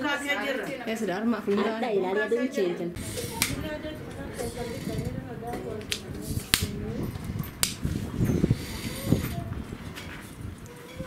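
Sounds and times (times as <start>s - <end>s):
tripod clicks: 3.1s - 3.7s.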